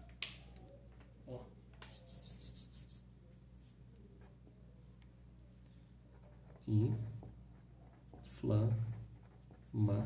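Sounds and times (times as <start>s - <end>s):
low steady hum: 0.0s - 10.0s
pen scratching on paper: 6.1s - 10.0s.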